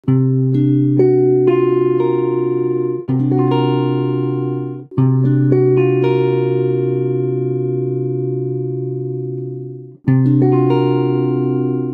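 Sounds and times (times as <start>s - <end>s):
electric guitar chords: 0.0s - 11.9s.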